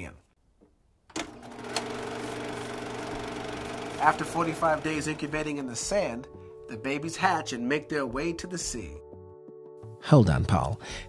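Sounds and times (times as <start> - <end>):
film projector motor running: 1.1 - 5.6.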